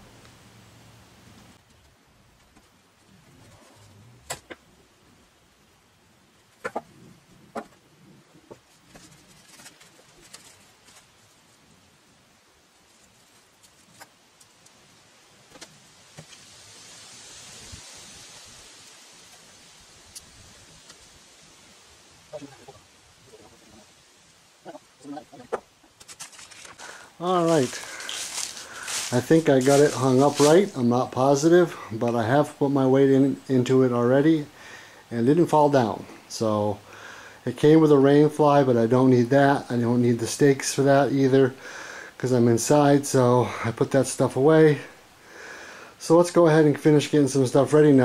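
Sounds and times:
fabric rustling: 25.9s - 30.8s.

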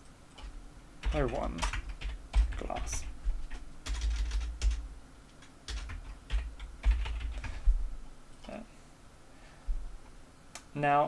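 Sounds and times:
typing on computer keyboard: 0.4s - 7.7s.

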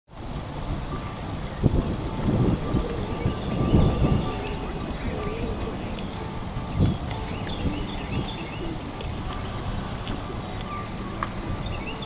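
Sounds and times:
wind rumbling on microphone: 0.1s - 12.0s.

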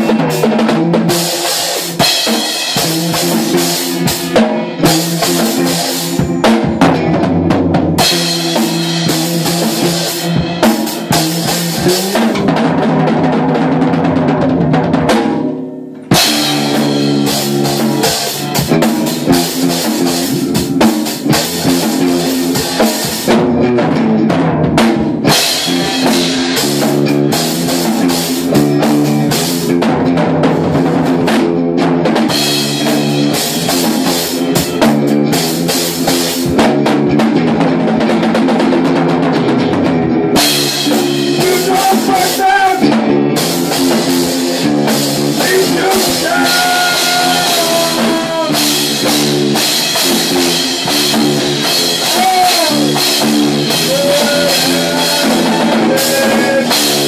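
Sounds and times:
amplified guitar riff: 0.0s - 57.0s
drum kit playing: 0.0s - 57.0s.

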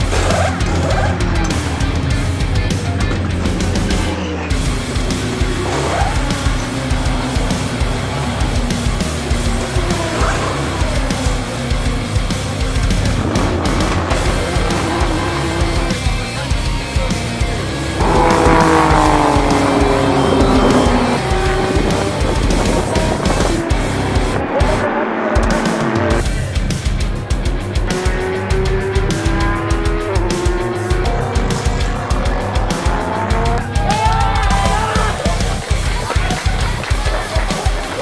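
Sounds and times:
racing car engines at high revs: 0.0s - 33.8s
background music with steady beat: 0.0s - 38.0s.

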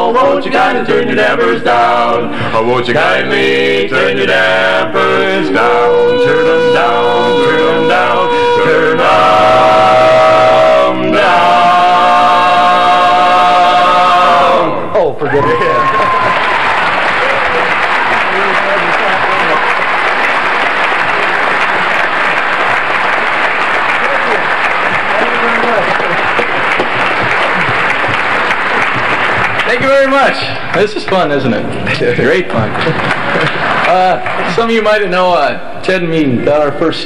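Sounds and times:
barbershop quartet singing: 0.0s - 15.7s, 17.7s - 30.7s
audience applauding: 15.2s - 35.1s.

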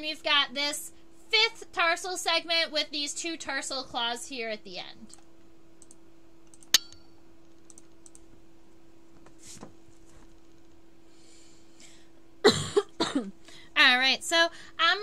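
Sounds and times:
low steady hum: 0.0s - 15.0s
sharp click: 5.8s - 7.1s.

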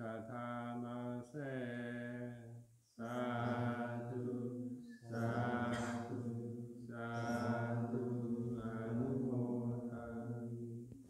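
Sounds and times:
man chanting: 0.0s - 10.8s.

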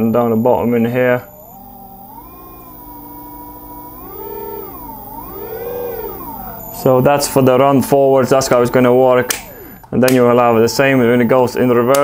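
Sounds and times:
electric motor whine gliding in pitch: 0.0s - 12.0s.

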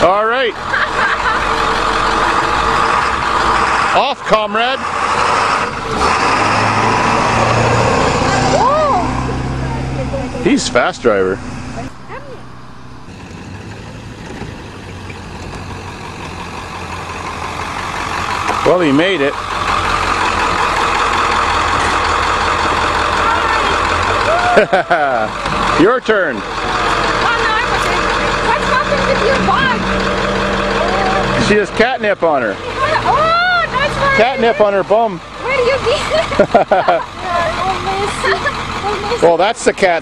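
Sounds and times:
bus engine running: 0.0s - 40.0s.

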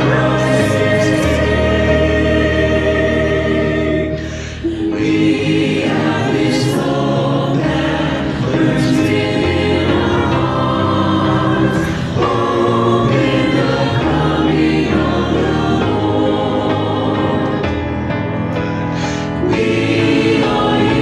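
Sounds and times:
choir singing gospel in harmony: 0.0s - 21.0s.

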